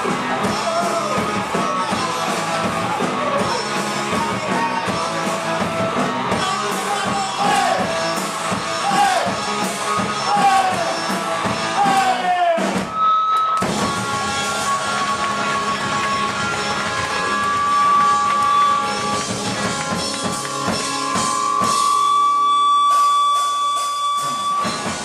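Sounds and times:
live rock band playing: 0.0 - 25.0.

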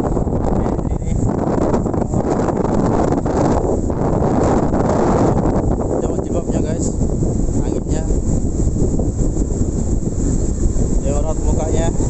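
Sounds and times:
storm wind buffeting microphone: 0.0 - 12.0.

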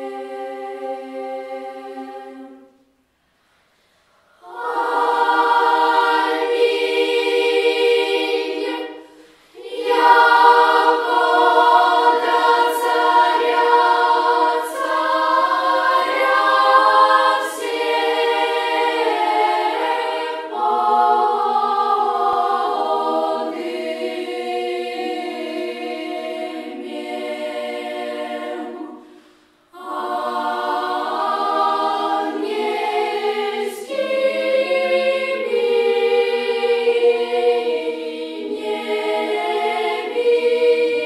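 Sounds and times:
children's choir singing: 0.0 - 3.0, 4.2 - 41.0.

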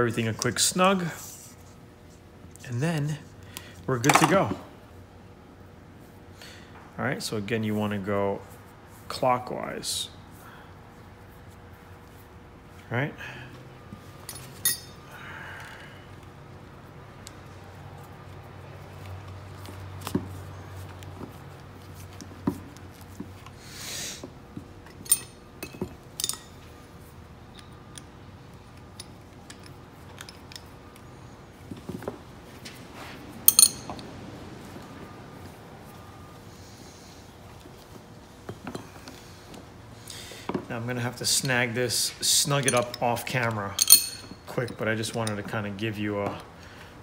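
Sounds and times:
wrenches clinking on metal fittings: 14.2 - 15.0, 24.8 - 26.7, 28.7 - 31.0, 33.5 - 34.0, 41.1 - 46.4.

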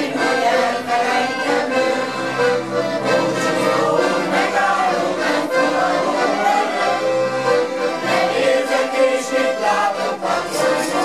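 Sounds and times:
accordions playing folk tune: 0.0 - 11.0.

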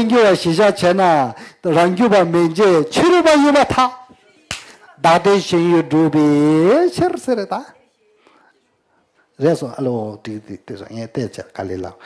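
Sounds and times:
man talking: 0.0 - 4.1, 5.0 - 7.8, 9.4 - 12.0.

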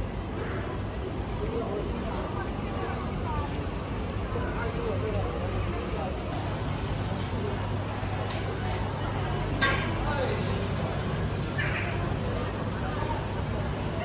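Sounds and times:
low traffic rumble: 0.0 - 14.0
people chatting: 0.0 - 14.0.

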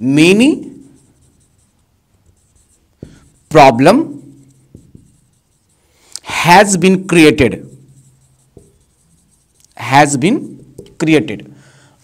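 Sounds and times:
marker writing on whiteboard: 0.0 - 11.3
marker tapping whiteboard: 2.3 - 5.7, 8.4 - 9.8, 10.6 - 11.0.

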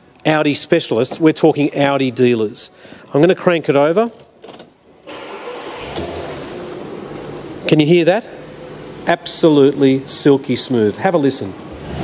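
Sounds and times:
car engine starting and running: 5.0 - 12.0.

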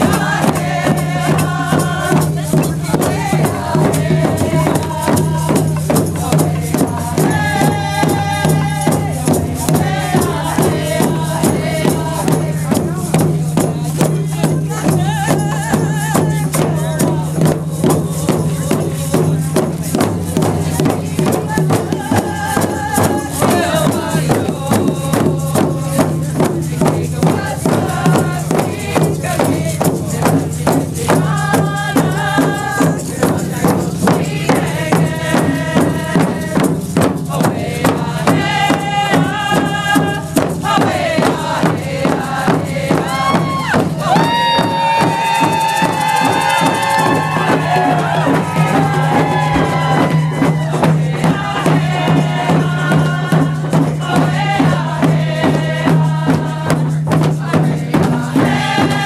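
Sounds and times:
frame drums beating: 0.0 - 59.0
voices singing a chant: 0.0 - 59.0.

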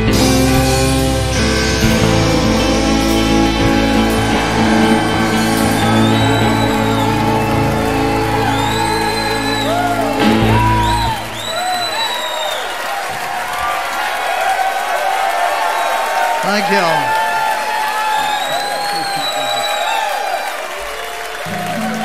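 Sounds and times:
live band final chord: 0.0 - 11.4
audience cheering and whooping: 2.6 - 22.0
high whistles from audience: 3.0 - 13.1, 17.9 - 22.0.

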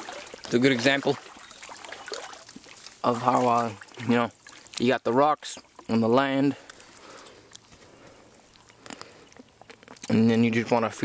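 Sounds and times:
hand splashing in shallow water: 0.0 - 4.8.

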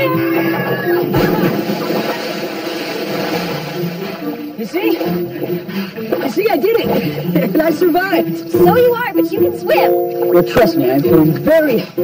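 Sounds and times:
splashing water: 1.0 - 7.5
heavy splash into pool: 1.1 - 5.1.

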